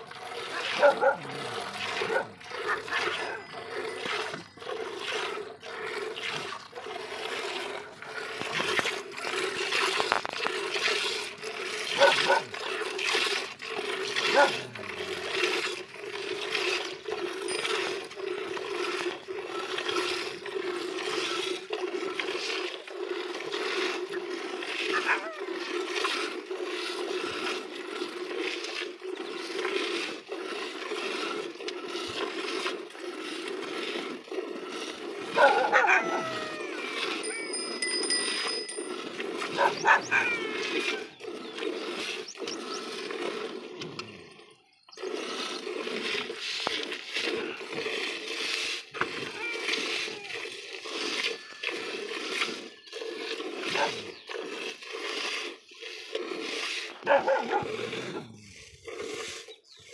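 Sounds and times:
milk squirting into steel bucket: 0.0 - 59.9.

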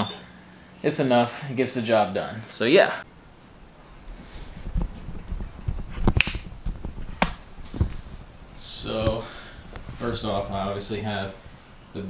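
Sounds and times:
footsteps: 4.2 - 10.7.

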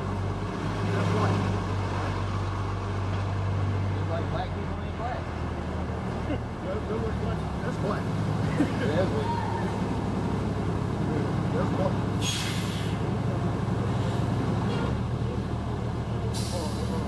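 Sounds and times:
bus engine idling: 0.0 - 17.0
air brakes hissing: 12.2 - 13.2, 13.9 - 14.9, 16.3 - 17.0.

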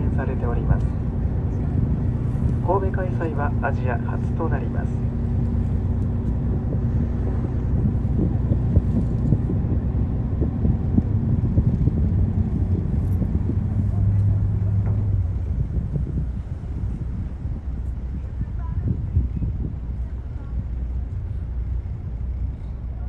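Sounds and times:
boat engine humming: 0.0 - 23.0.

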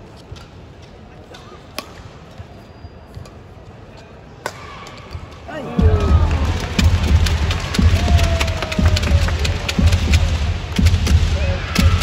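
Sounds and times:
crowd cheering loudly: 5.5 - 10.6.

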